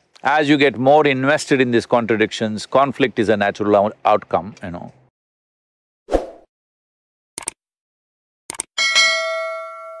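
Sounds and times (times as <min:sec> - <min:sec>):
bright bell chime: 0:08.8 - 0:10.0.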